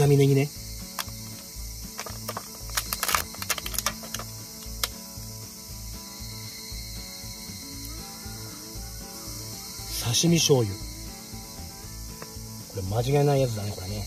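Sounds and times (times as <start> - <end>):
plastic container lid clicking: 0.9 - 1.4, 2.0 - 5.0.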